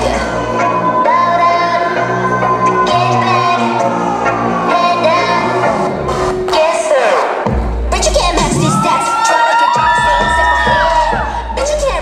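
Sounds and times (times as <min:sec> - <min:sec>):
dance track bass: 0:00.0 - 0:12.0
audience cheering and screaming: 0:00.2 - 0:06.0, 0:08.4 - 0:12.0.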